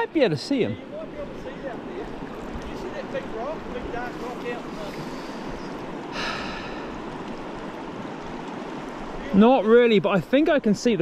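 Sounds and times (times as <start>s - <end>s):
stream running over stones: 0.0s - 11.0s.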